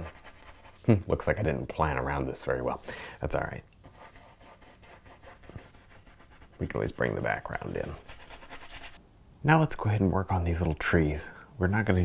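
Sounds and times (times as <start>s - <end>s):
paintbrush stroking on canvas: 0.0s - 0.9s, 3.8s - 9.0s.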